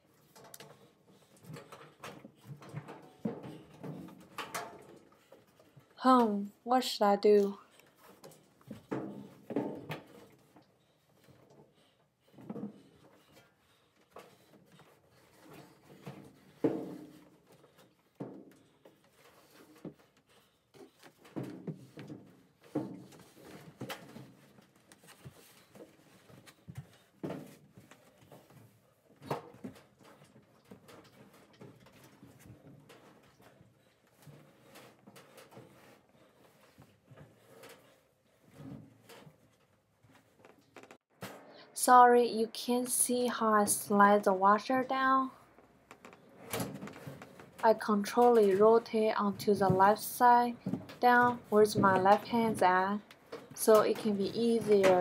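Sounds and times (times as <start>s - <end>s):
washing machine bumping down stairs: 48.0s - 53.0s.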